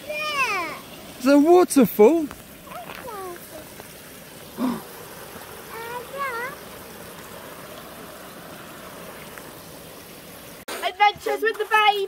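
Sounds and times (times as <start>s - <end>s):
small waterfall over a log: 0.0s - 12.0s.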